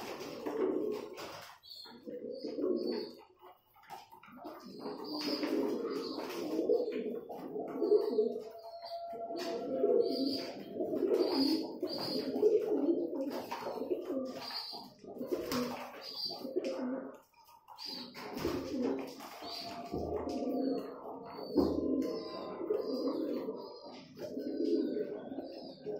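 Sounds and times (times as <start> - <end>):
pigeons cooing: 0.0 - 25.9
beaks pecking plastic tray: 10.1 - 22.9.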